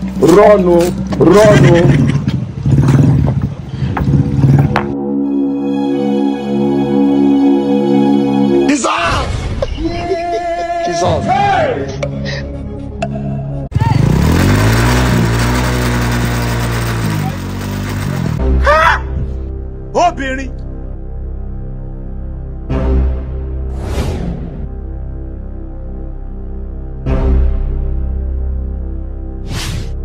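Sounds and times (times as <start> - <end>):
motorbike engine running: 13.7 - 18.4
rear wheel spinning: 13.8 - 18.4.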